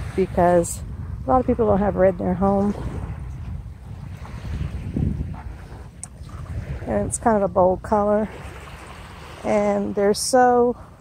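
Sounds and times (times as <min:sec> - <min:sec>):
small waves washing onto sand: 0:00.0 - 0:11.0
wind buffeting microphone: 0:00.0 - 0:11.0.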